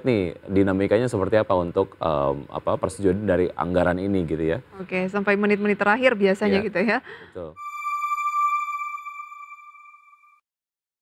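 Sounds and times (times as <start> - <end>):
ringing chime: 7.6 - 10.4.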